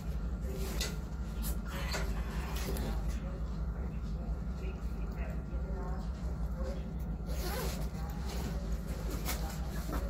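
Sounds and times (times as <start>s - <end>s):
bag zipper being pulled: 7.3s - 7.9s.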